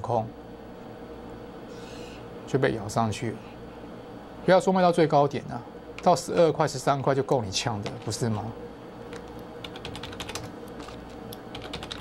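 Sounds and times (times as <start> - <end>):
computer keyboard typing: 9.6 - 12.0.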